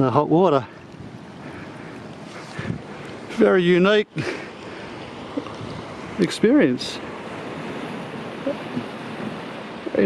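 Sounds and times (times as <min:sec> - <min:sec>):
ocean surf on rocky shore: 0:00.0 - 0:10.0
wind on microphone: 0:00.8 - 0:03.4, 0:05.1 - 0:10.0.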